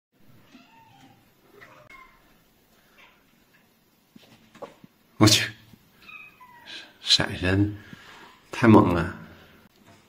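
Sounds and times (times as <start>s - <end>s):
cats meowing faintly: 0.2s - 3.4s, 5.9s - 7.0s.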